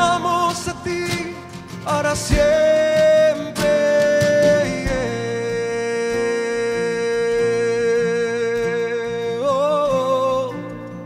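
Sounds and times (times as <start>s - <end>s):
live band playing worship song: 0.0s - 11.0s.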